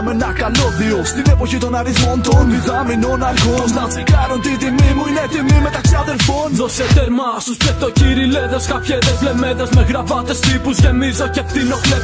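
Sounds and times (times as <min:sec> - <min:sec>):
bass: 0:00.0 - 0:12.0
rapping over a beat: 0:00.0 - 0:12.0
deep kick drums: 0:01.3 - 0:06.0.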